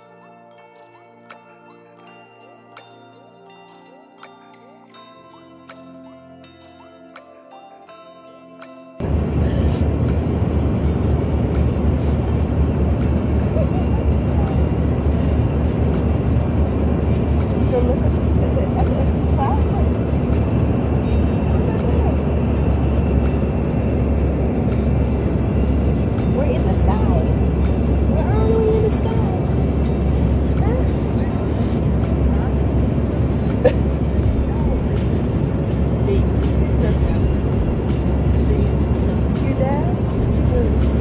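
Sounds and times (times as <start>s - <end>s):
car road noise rumble: 9.0s - 41.0s
faint voices: 10.8s - 41.0s.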